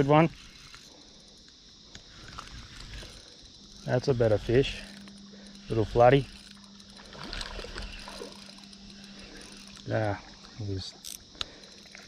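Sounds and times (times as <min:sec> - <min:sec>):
insects buzzing: 0:00.0 - 0:12.0
faint low hum: 0:00.3 - 0:12.0.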